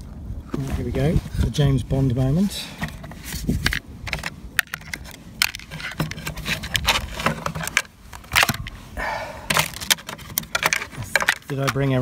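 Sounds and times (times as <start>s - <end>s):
clicks knocks and rattles: 2.8s - 8.7s, 9.5s - 12.0s.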